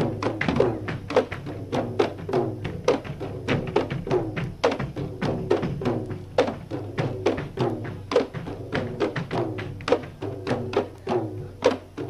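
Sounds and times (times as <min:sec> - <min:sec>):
barrel drums beaten by hand: 0:00.0 - 0:12.0.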